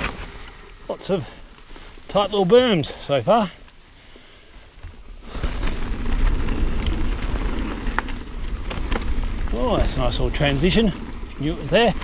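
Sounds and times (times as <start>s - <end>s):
bike tyres rumbling on dirt: 0.0s - 12.0s.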